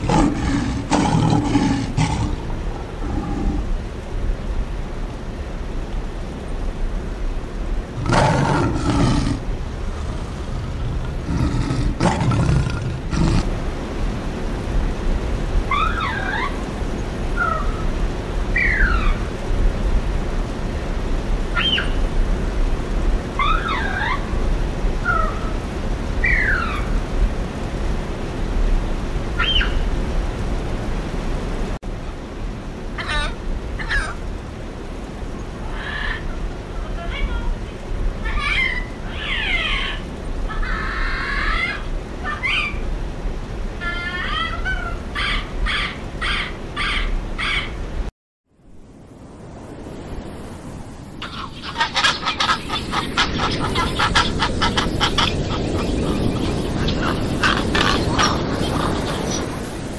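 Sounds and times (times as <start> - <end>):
lion roaring: 0.0 - 3.7, 8.0 - 13.5
high chirps and whistled calls: 18.6 - 19.2, 21.6 - 22.0, 29.4 - 29.8, 51.2 - 59.9.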